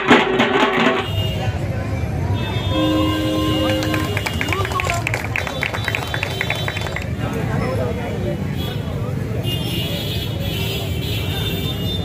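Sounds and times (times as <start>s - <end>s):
held horn-like tone: 2.4s - 4.4s.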